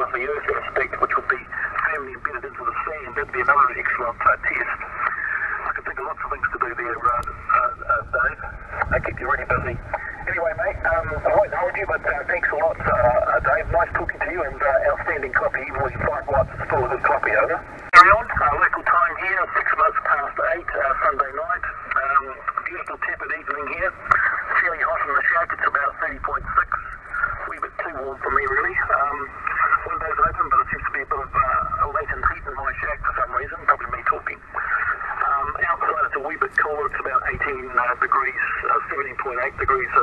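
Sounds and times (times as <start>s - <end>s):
radio static: 0.0s - 40.0s
thin radio speech: 0.0s - 40.0s.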